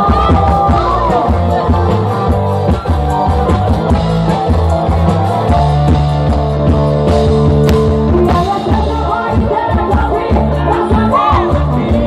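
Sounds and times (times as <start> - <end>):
drum strokes: 0.0 - 12.0
held bass notes: 0.0 - 12.0
live band playing: 0.0 - 12.0.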